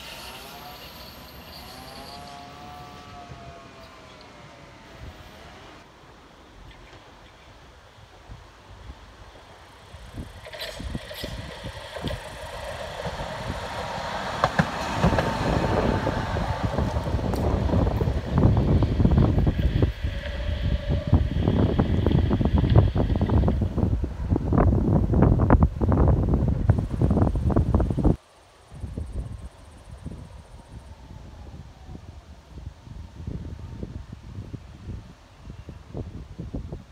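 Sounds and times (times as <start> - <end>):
tram wheels clattering over rail joints: 0.0 - 3.2, 9.8 - 23.9
tram motor whine: 0.0 - 5.9, 8.8 - 28.2.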